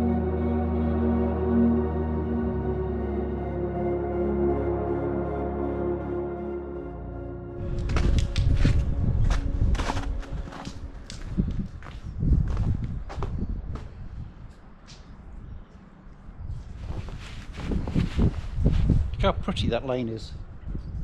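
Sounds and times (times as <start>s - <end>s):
footsteps in slush: 7.6s - 12.8s
low rumble on microphone: 7.6s - 14.6s.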